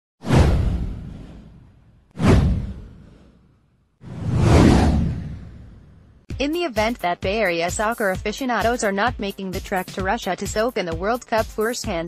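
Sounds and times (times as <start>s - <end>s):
whoosh with low rumble: 0.2s - 6.3s.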